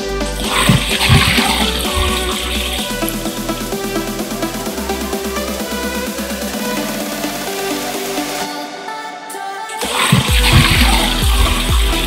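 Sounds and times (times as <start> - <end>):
electronic dance music: 0.0 - 12.0
liquid pouring and splashing: 0.4 - 3.2, 9.8 - 12.0.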